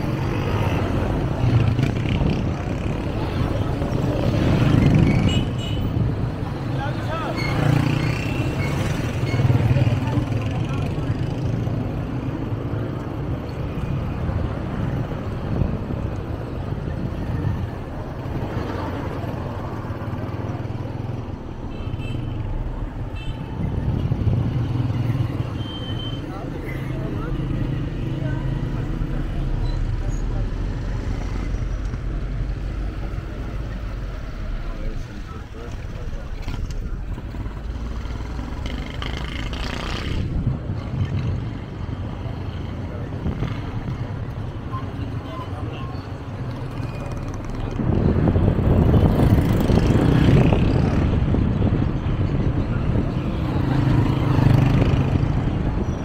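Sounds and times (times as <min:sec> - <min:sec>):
motorcycles passing: 0:00.0 - 0:25.6, 0:26.2 - 0:56.0
vehicle engines running: 0:26.3 - 0:56.0.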